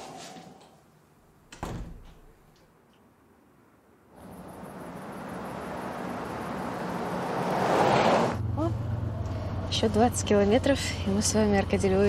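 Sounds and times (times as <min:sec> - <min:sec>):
door shutting: 0:01.5 - 0:02.3
car approaching on road: 0:04.2 - 0:12.0.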